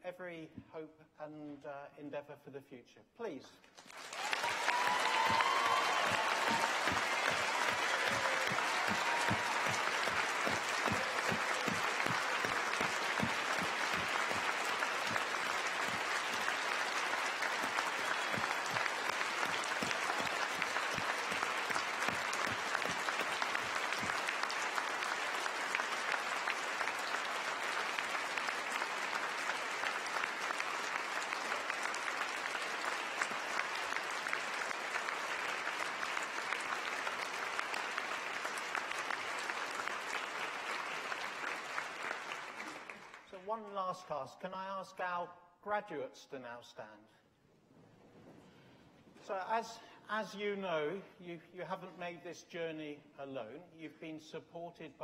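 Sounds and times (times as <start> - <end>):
audience applauding: 3.8 - 43.3.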